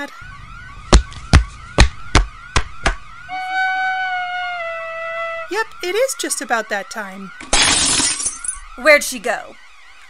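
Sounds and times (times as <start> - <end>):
wailing siren: 0.0 - 10.0
steady held tone: 0.1 - 6.0.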